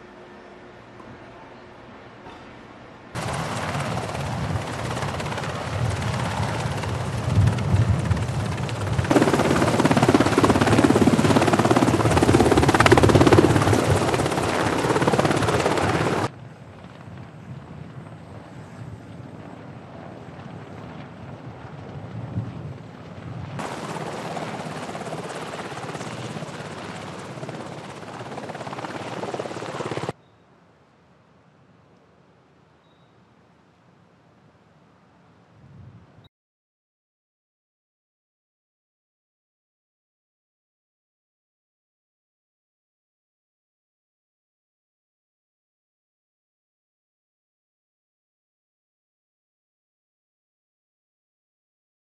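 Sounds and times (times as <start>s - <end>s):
helicopter rotor and engine: 3.1s - 30.2s.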